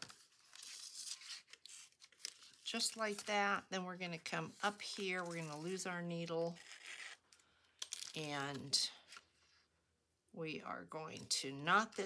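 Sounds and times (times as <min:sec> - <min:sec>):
paper rustling: 0:00.0 - 0:03.5.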